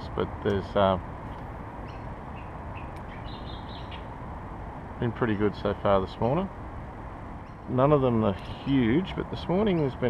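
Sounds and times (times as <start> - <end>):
birds chirping: 0.0 - 10.0
low outdoor rumble: 0.0 - 10.0.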